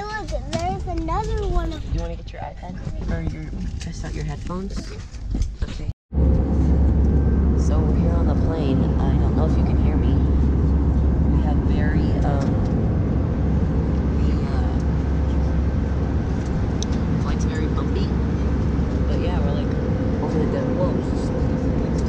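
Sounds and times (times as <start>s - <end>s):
jet cabin engine drone: 6.1s - 22.0s.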